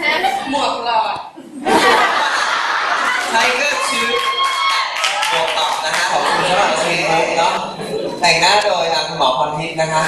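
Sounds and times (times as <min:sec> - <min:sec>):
group laughing: 0:01.4 - 0:03.8, 0:05.6 - 0:08.6.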